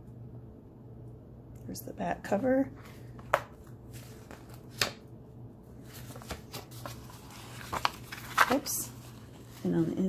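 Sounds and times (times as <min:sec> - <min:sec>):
comic pages rustling and flapping: 0:02.8 - 0:05.0, 0:05.8 - 0:10.0.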